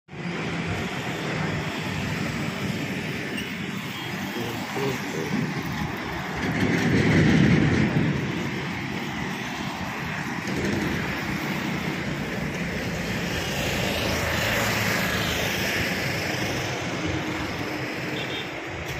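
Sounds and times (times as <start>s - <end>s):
traffic engine rumble and tyre noise: 0.1s - 18.9s.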